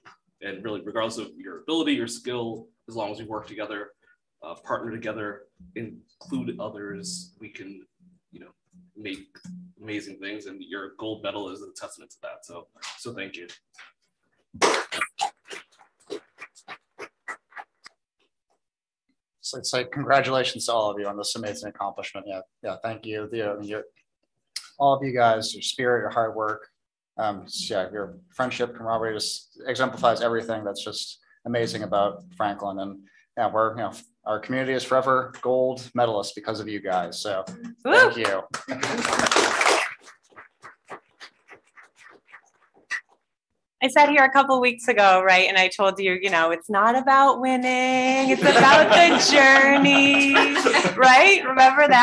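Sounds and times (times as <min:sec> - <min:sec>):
applause: 0:38.2 - 0:40.0
scattered hand claps: 0:38.2 - 0:41.0.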